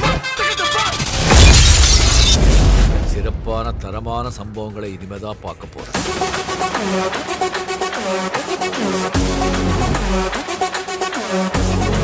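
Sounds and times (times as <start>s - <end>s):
film soundtrack music with voice: 0.0s - 1.3s, 2.4s - 12.0s
glass shattering: 1.2s - 2.6s.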